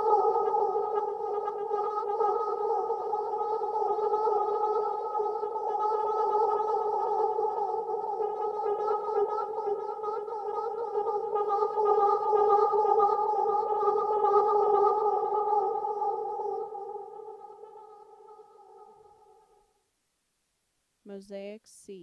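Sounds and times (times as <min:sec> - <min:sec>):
warbling looped voice drone: 0:00.0 - 0:19.5.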